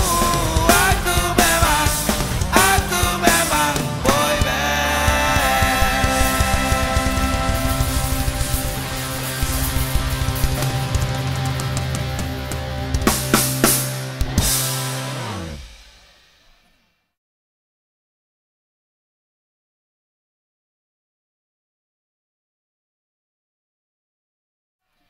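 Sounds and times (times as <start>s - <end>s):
live ska band playing: 0.0s - 15.2s
drum and cymbal hits: 0.0s - 16.6s.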